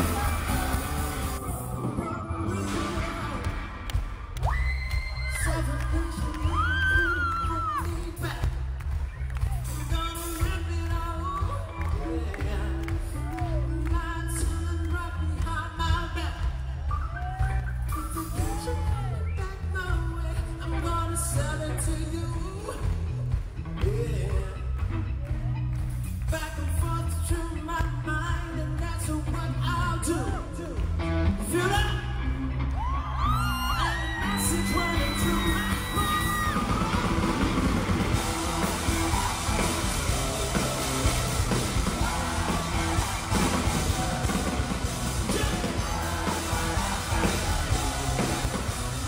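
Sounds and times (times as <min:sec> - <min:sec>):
audience yelling: 0:00.0 - 0:07.9, 0:32.6 - 0:49.0
steady drum beat: 0:00.0 - 0:20.6, 0:34.2 - 0:49.0.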